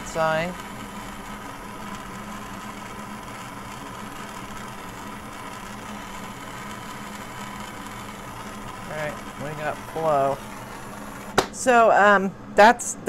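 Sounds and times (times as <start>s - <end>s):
gas torch flame hissing: 0.0s - 11.8s.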